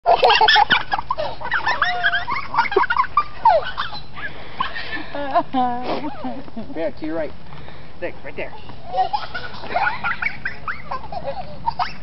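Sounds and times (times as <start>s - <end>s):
geese honking: 0.1s - 5.0s.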